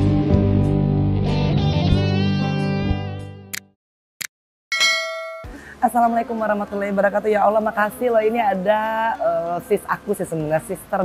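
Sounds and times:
bright metallic chime: 4.7 - 5.6.

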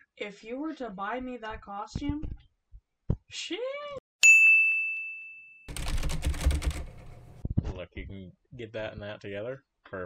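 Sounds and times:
bell-like ding: 4.2 - 5.7
rapid keyboard typing: 5.7 - 7.4.

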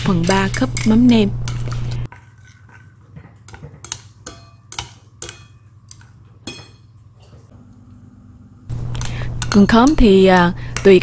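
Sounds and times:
chopsticks tapping a ceramic bowl: 3.5 - 6.9.

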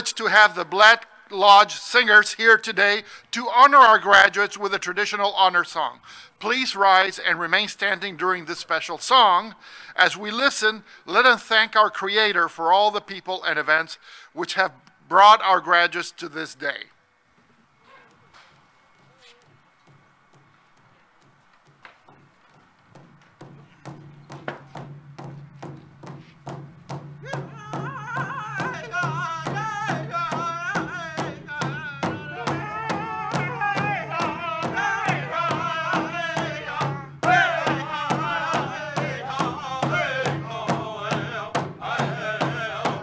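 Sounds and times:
big drum steady beat: 23.4 - 43.0
voices singing: 27.2 - 43.0.

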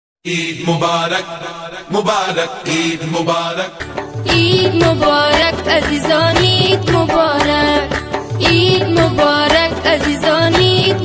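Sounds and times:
chant-like sung vocal: 0.2 - 7.4.

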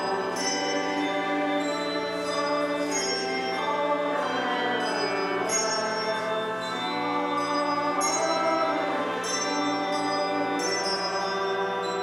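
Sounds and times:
instrumental hymn with bell tones: 0.0 - 12.0.

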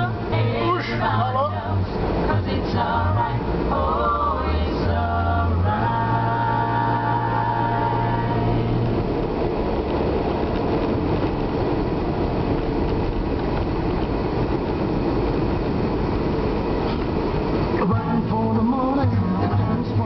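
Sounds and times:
car radio music: 0.0 - 20.0
car road and engine noise: 0.0 - 20.0.

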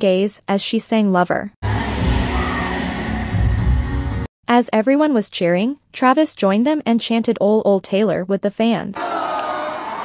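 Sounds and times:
loud crowd noise: 1.6 - 3.3, 9.0 - 10.0.

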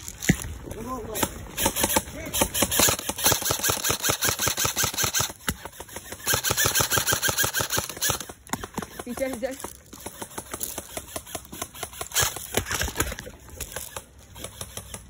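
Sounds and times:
airsoft guns firing bursts: 1.1 - 15.0.

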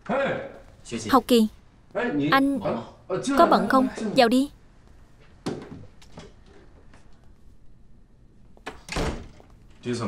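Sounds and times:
wooden door shutting with a thud: 8.6 - 9.5.

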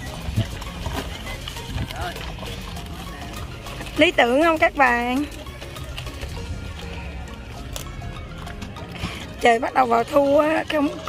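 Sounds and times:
wagon wheels rumbling over dirt: 0.0 - 11.0.

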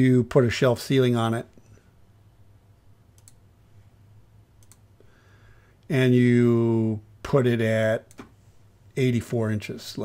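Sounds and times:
quiet room noise: 0.0 - 10.0
computer mouse clicks: 3.1 - 3.4, 4.6 - 4.9, 8.1 - 8.4.

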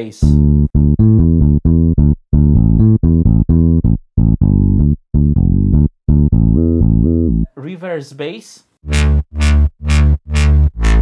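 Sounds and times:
synth bass line plucked notes: 0.2 - 7.5, 8.8 - 11.0.

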